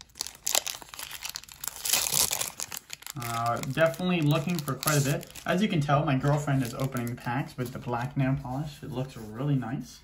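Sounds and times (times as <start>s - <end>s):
foil wrapper crinkling: 0.0s - 7.4s.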